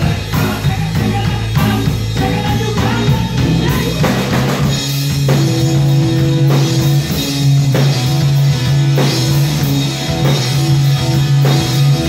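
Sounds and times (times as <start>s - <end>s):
bass drum and snare: 0.0s - 12.0s
funk band playing: 0.0s - 12.0s.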